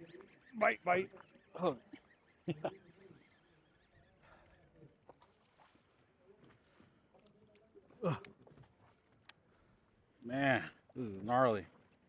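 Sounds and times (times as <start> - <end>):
faint wind: 0.0 - 12.0.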